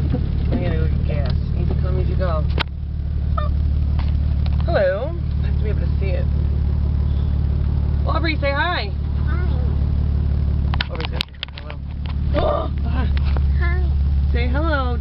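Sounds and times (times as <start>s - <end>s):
car engine and road noise: 0.0s - 15.0s.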